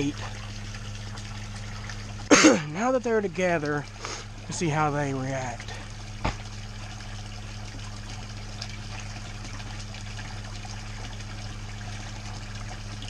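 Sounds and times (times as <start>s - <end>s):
low hum: 0.0s - 13.0s
water splashing into pool: 0.0s - 13.0s.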